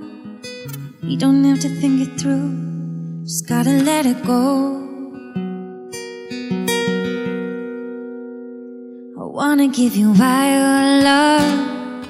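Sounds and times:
acoustic guitar picking: 0:00.0 - 0:12.0.

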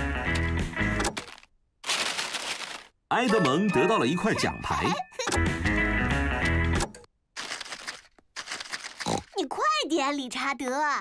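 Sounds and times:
music: 0:00.0 - 0:01.1, 0:03.1 - 0:06.9
wrapping paper tearing: 0:01.1 - 0:03.0, 0:07.4 - 0:09.4.

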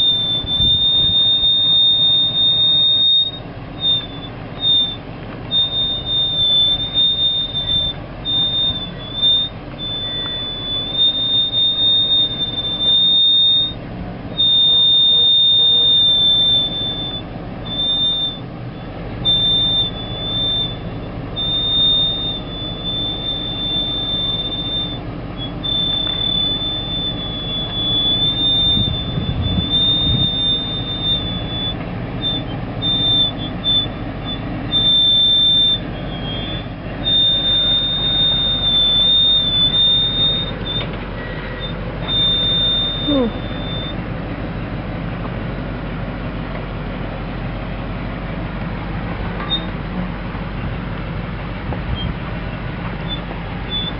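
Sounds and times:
high-pitched squeal: 0:00.0 - 0:44.1, 0:49.4 - 0:50.2, 0:51.9 - 0:53.9
engine low rumble: 0:00.0 - 0:53.9.

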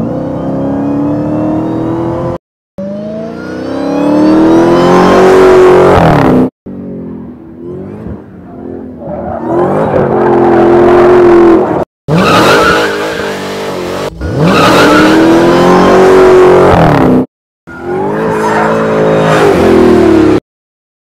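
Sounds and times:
car engine revving hard: 0:00.0 - 0:06.5, 0:09.5 - 0:17.2.

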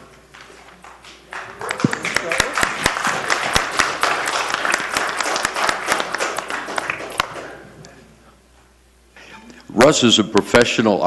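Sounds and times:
applause: 0:00.3 - 0:07.6.

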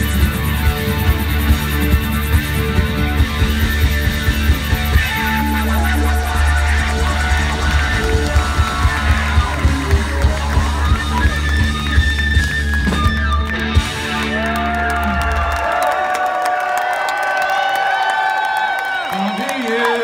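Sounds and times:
live rock band playing: 0:00.0 - 0:15.7
crowd cheering and whistling: 0:00.0 - 0:20.0.

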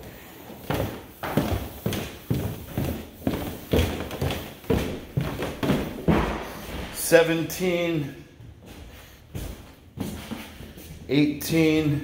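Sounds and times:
footsteps down wooden stairs: 0:00.0 - 0:07.1, 0:08.4 - 0:11.1.

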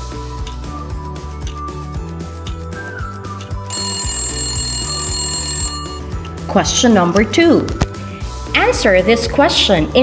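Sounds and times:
background music with beat: 0:00.0 - 0:03.8
timer alarm ringing: 0:03.7 - 0:06.2.

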